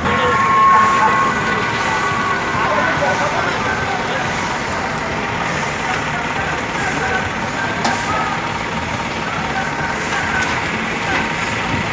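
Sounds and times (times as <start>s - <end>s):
indistinct voices: 0.0s - 11.9s
vehicles on wet road: 0.0s - 11.9s.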